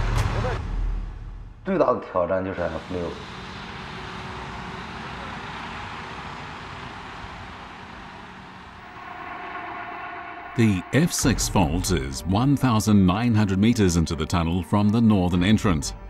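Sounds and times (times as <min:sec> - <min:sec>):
steady pitched tone: 0:02.6 - 0:14.0.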